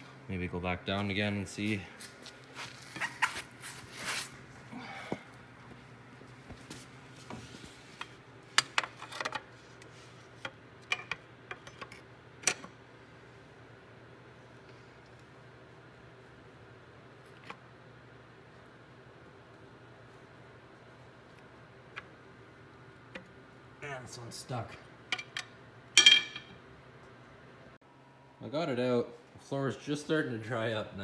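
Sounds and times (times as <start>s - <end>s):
faint steady hum: 0.0s - 31.0s.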